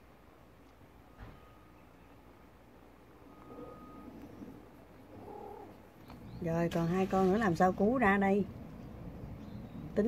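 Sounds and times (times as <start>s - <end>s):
cat purring: 3.4s - 5.8s.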